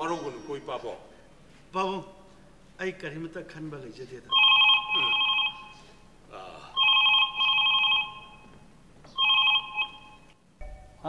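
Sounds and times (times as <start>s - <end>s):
telephone ringing: 4.3s - 6.0s, 6.8s - 11.0s.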